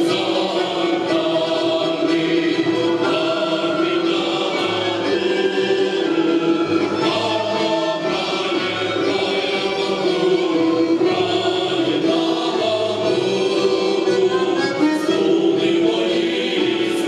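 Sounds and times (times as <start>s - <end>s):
folk choir singing: 0.0s - 17.0s.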